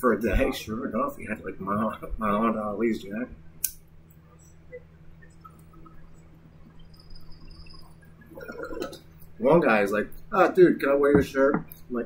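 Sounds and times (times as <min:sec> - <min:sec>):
steady low hum: 0:00.0 - 0:12.0
faint small sounds: 0:00.2 - 0:10.4.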